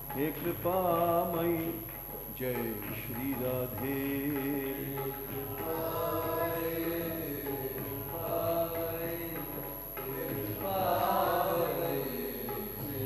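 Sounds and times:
voices singing long wavering notes: 0:04.1 - 0:13.0.

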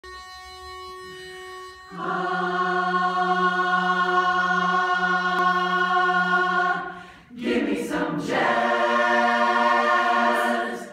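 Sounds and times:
pitch pipe reed tone: 0:00.0 - 0:04.9
women's chorus singing: 0:01.9 - 0:10.9.

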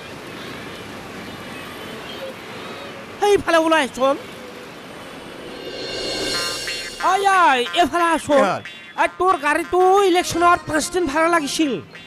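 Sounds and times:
roadside traffic noise: 0:00.0 - 0:10.8.

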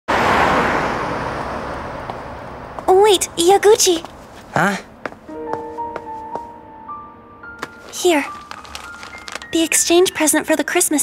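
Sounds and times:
car passing on street: 0:00.1 - 0:06.6.

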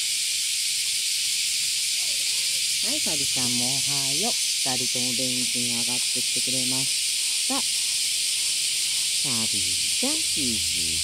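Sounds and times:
cicadas shrilling: 0:00.0 - 0:11.0
woman speaking: 0:02.8 - 0:06.9, 0:07.5 - 0:07.7, 0:09.2 - 0:10.8.

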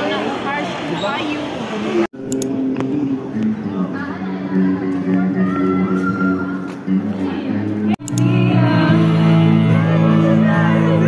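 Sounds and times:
guitar accompaniment: 0:02.2 - 0:11.0
woman singing through microphone: 0:07.4 - 0:11.0.

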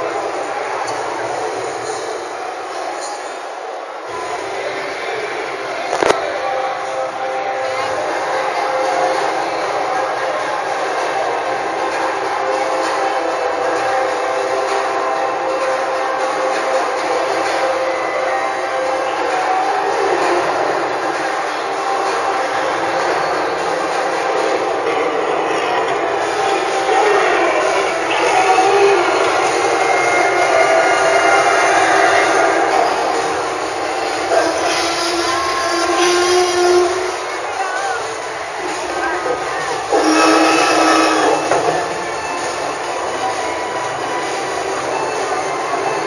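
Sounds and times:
crowd din: 0:00.0 - 0:46.0.

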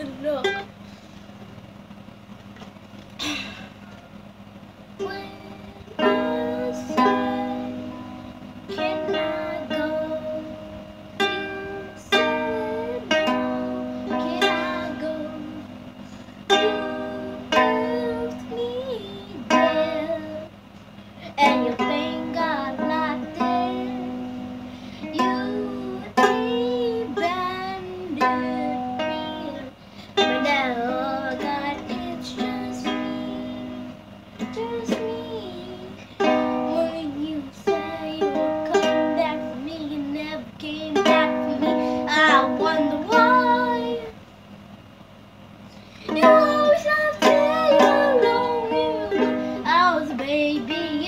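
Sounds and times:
ukulele strummed in chords: 0:00.0 - 0:00.7, 0:05.0 - 0:20.5, 0:21.4 - 0:44.1, 0:46.1 - 0:51.0.

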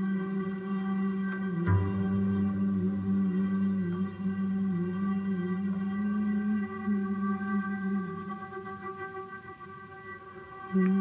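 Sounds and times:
man singing long wavering note: 0:00.0 - 0:08.7, 0:10.7 - 0:11.0
bowed double bass drone: 0:00.0 - 0:09.0, 0:10.7 - 0:11.0.

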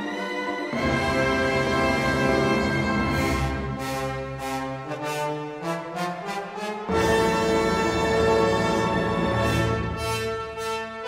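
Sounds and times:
full orchestra: 0:00.0 - 0:11.0.

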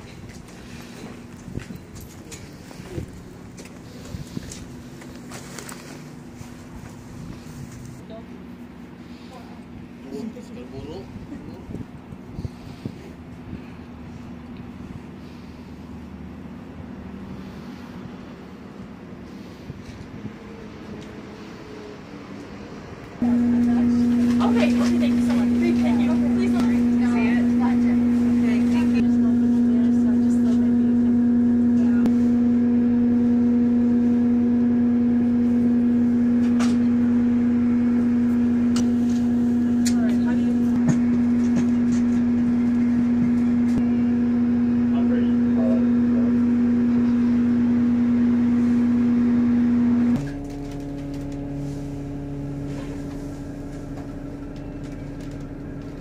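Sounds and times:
bus machinery hum: 0:00.0 - 0:56.0
quieter lower hum: 0:23.1 - 0:56.0.

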